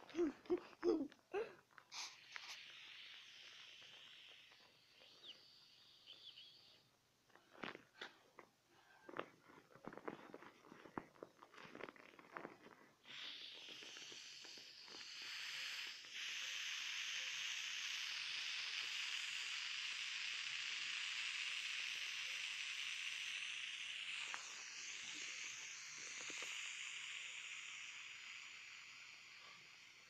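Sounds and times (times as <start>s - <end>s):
air hissing out of beach ball: 0.0s - 6.7s, 13.0s - 30.0s.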